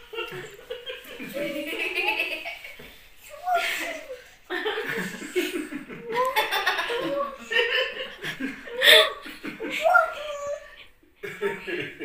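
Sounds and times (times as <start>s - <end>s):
people laughing: 0.0s - 2.9s, 3.5s - 10.3s, 11.2s - 12.0s.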